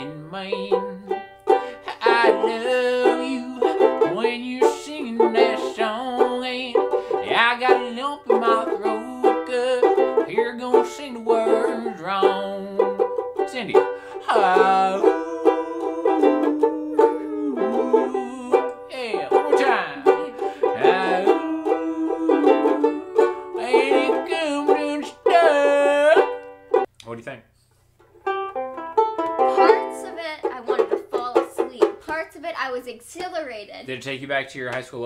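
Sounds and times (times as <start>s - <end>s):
man and woman singing: 0.0s - 26.4s
ukuleles strummed: 0.0s - 26.9s, 28.3s - 32.3s.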